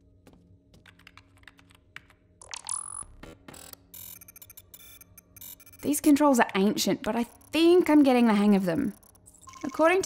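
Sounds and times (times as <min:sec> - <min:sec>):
typing on keyboard: 0:00.8 - 0:02.2, 0:08.6 - 0:09.7.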